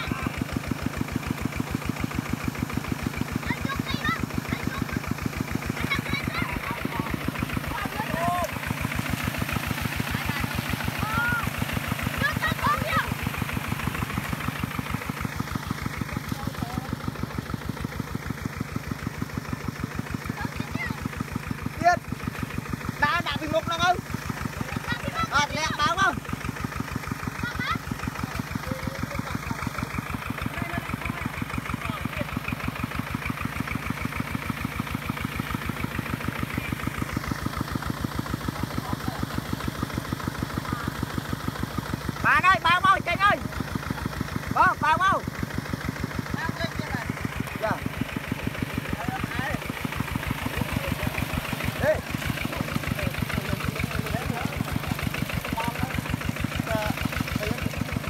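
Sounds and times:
diesel engine chugging: 0.0 - 58.0
people shouting: 11.0 - 13.3.

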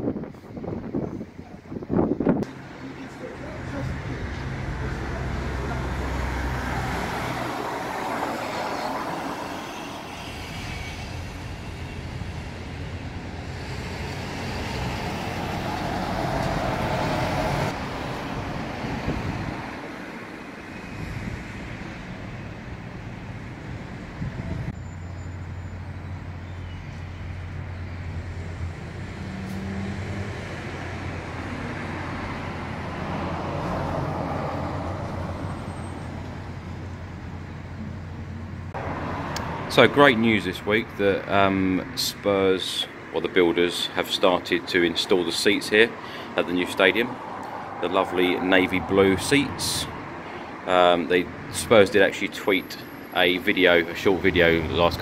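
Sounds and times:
vehicles passing: 0.0 - 55.0.

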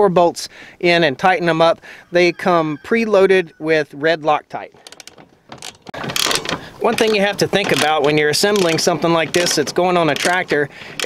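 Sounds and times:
ratchet wrench clicking: 4.8 - 7.1, 7.7 - 11.0.

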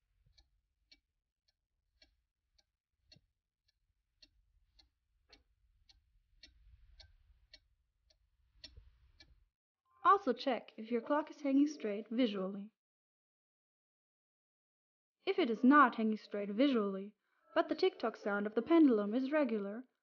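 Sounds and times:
clock ticking: 0.0 - 9.4, 10.2 - 12.4, 15.4 - 16.7, 17.6 - 19.7.

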